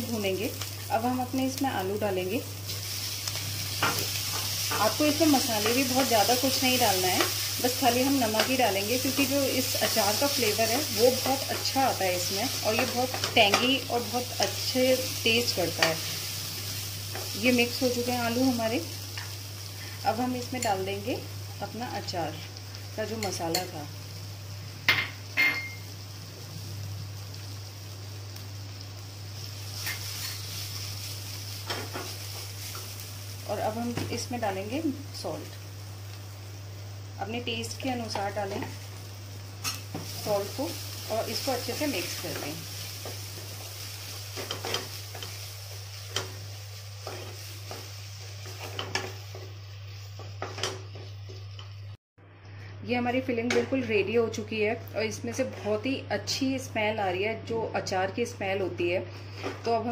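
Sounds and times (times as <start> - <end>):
low frying sizzle: 0.0 - 59.9
spoon stirring and scraping pan: 2.6 - 18.2, 29.4 - 33.4, 39.6 - 51.8.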